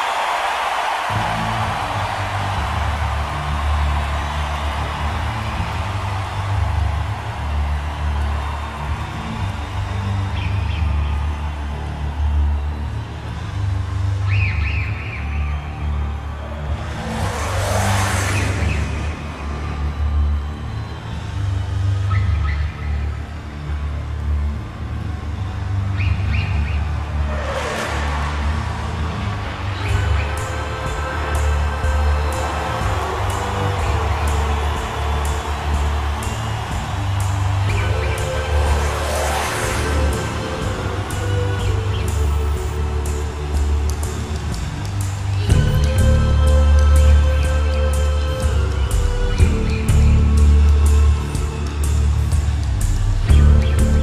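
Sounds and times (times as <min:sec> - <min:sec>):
pulsing low bass throb: 0:39.7 - 0:54.0.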